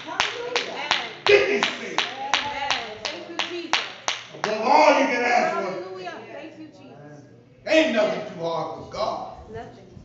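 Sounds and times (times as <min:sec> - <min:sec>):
rhythmic hand clapping: 0:00.0 - 0:04.6.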